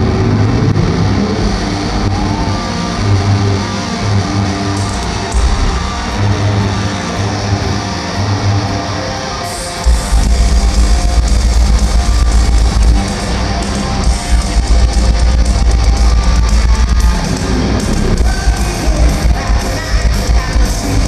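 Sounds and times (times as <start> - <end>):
loud electric guitar solo: 0.0 - 21.0
heavy low hit: 4.9 - 6.8.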